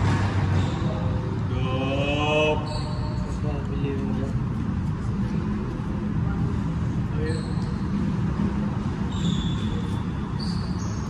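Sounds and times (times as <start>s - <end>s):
low room rumble: 0.0s - 11.0s
sneaker squeak on wooden floor: 0.5s - 1.1s, 2.7s - 3.4s, 7.2s - 7.9s, 9.1s - 11.0s.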